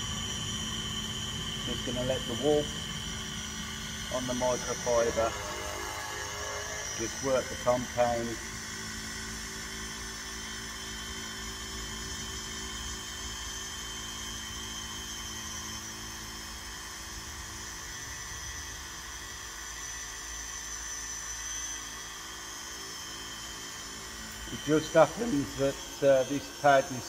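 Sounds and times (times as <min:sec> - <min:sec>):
polisher high electric whine: 0:00.0 - 0:27.0.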